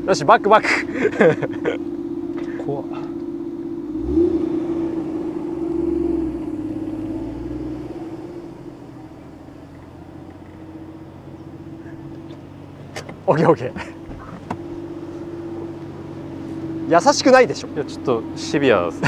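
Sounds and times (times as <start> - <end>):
car engine revving: 0.0 - 19.0.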